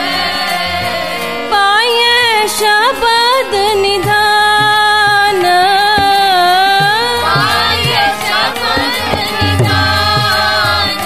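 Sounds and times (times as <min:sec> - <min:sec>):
harmonium drone: 0:00.0 - 0:11.0
voices singing a hymn: 0:00.0 - 0:11.0
tabla strokes: 0:04.0 - 0:11.0.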